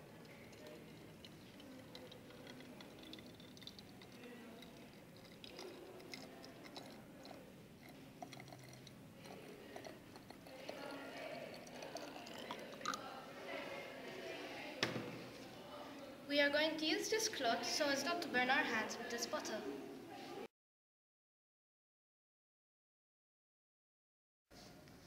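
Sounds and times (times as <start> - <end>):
low room murmur: 0.0 - 20.5.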